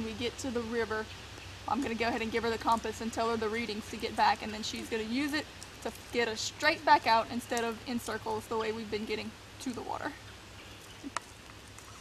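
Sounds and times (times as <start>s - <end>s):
forest ambience: 0.0s - 12.0s.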